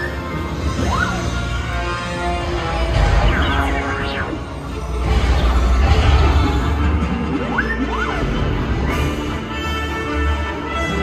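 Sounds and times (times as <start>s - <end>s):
theme park ride music over speakers: 0.0s - 11.0s.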